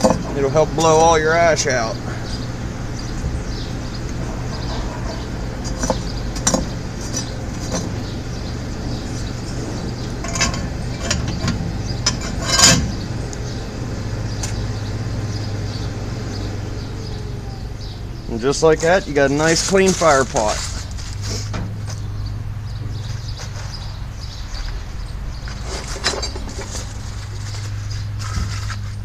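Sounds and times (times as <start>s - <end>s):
forge blower humming: 0.0s - 24.1s
ash scraping with metallic clinks: 3.9s - 13.2s, 25.6s - 29.0s.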